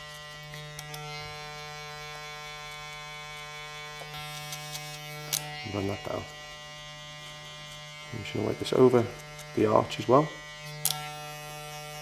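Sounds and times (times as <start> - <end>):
electric hair clippers humming: 0.0 - 12.0.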